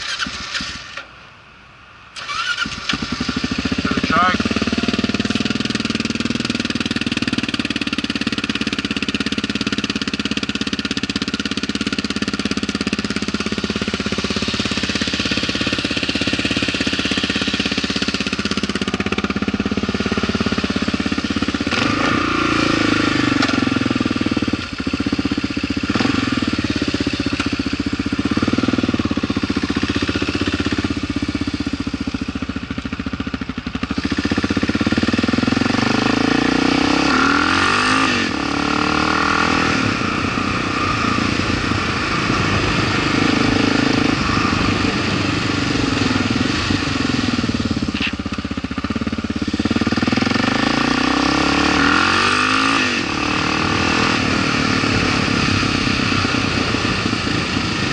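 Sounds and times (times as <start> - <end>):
motorcycle engine idling and revving: 0.0 - 57.9.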